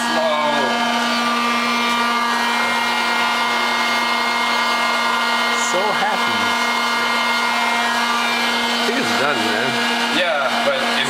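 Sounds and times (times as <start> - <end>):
machine motor and fan hum: 0.0 - 11.0.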